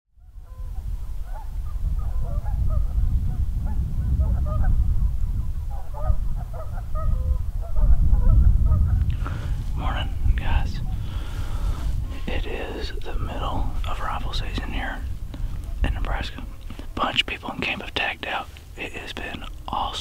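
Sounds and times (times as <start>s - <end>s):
steady low rumble: 0.4s - 20.0s.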